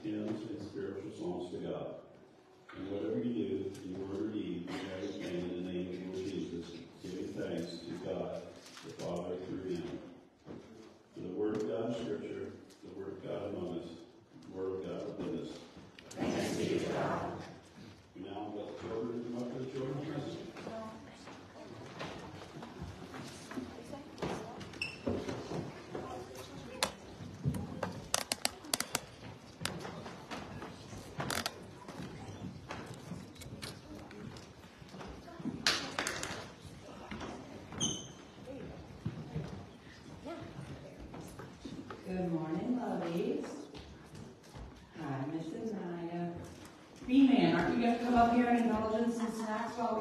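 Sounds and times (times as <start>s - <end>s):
man reading aloud: 2.7s - 10.2s, 11.2s - 15.8s, 18.2s - 20.4s
handling clicks and knocks: 26.7s - 34.5s.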